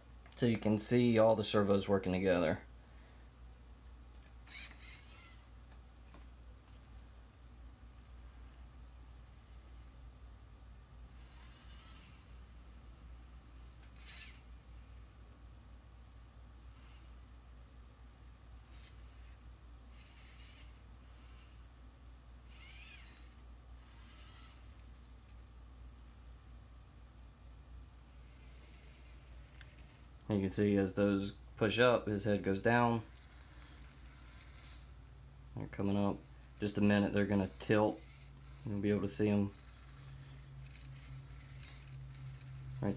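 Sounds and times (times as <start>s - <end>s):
servo motors whirring: 4.4s - 5.7s, 8.0s - 10.2s, 11.1s - 13.0s, 13.9s - 15.2s, 16.7s - 17.3s, 18.6s - 21.8s, 22.4s - 24.9s, 28.0s - 30.2s, 33.1s - 35.0s, 36.6s - 42.9s.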